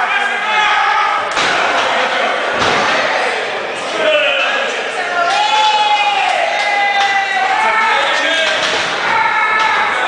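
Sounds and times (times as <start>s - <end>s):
voices shouting: 0.0s - 10.0s.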